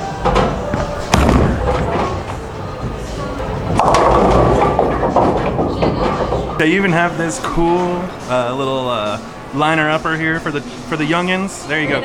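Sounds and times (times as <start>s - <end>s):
bowling pins crashing: 0.0s - 8.1s
bowling ball rolling on wooden lane: 0.2s - 7.6s.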